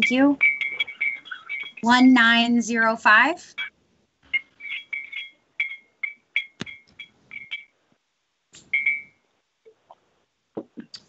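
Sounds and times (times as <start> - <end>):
short electronic beeps: 0.0 - 1.8, 4.4 - 7.7, 8.7 - 9.2.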